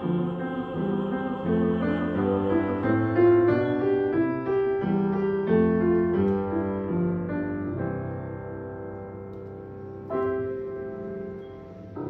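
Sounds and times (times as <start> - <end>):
slow gentle piano playing: 0.0 - 12.0.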